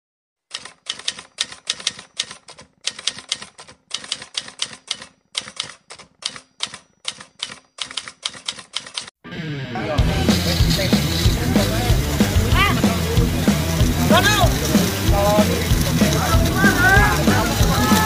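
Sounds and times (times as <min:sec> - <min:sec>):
typewriter keystroke clicks: 0:00.5 - 0:09.1
music: 0:09.2 - 0:18.0.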